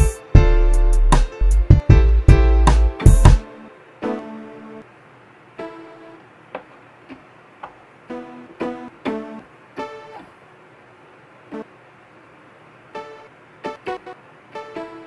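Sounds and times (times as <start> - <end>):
plucked keyboard notes: 0.0 - 4.8.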